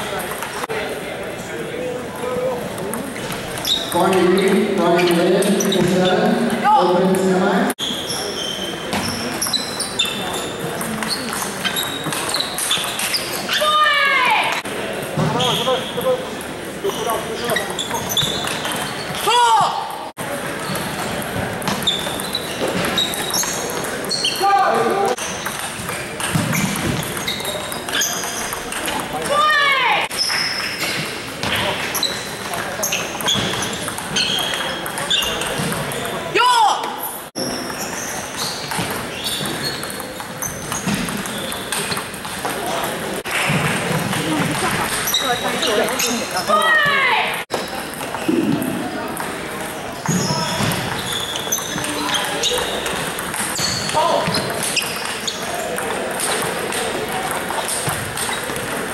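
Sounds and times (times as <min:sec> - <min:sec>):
players and voices in a hall: 0:00.0 - 0:58.9
shoe squeaking on floor: 0:03.1 - 0:14.4, 0:15.1 - 0:19.4, 0:20.5 - 0:36.3, 0:37.0 - 0:58.9.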